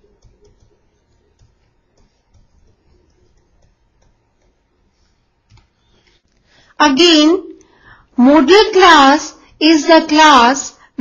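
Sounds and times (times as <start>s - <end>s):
stylus tapping on tablet: 0.0s - 6.4s.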